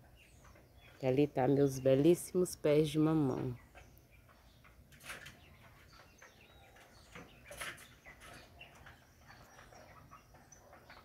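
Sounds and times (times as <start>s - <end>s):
bird chirps: 0.0s - 2.1s, 3.2s - 11.0s
faint outdoor ambience: 0.0s - 11.0s.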